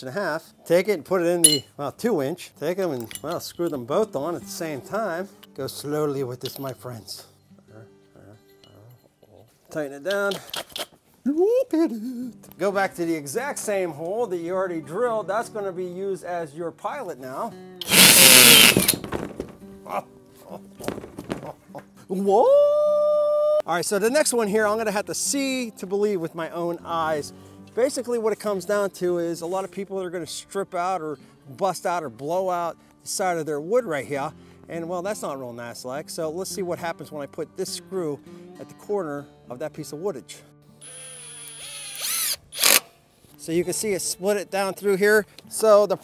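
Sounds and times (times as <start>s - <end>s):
cordless drill buzzing: 17.8s - 19.0s, 40.8s - 42.9s
impact driver motor whine: 17.8s - 19.0s, 40.8s - 42.8s
impact driver burst: 17.8s - 19.5s, 40.8s - 43.0s
wood splitting: 17.8s - 19.6s.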